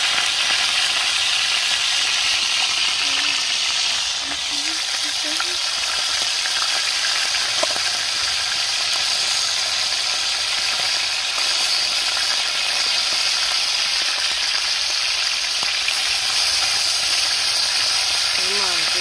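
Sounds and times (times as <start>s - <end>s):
fish sizzling in hot oil: 0.0s - 19.0s.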